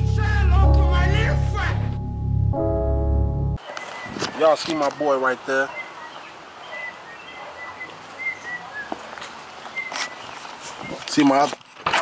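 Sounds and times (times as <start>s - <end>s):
small birds chirping: 3.6s - 11.5s.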